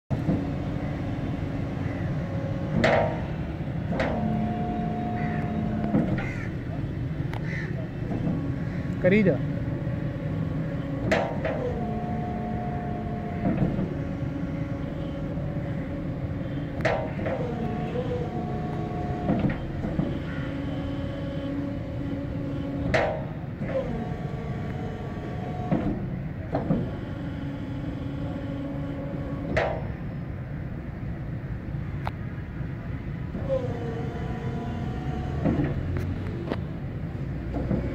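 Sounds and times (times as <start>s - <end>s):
hydraulic drive unit running: 0.1s - 37.9s
steady background hum: 0.1s - 37.9s
sharp mechanical clunk: 2.6s - 6.7s, 10.9s - 11.9s, 16.7s - 18.2s, 22.8s - 23.8s, 29.4s - 30.0s.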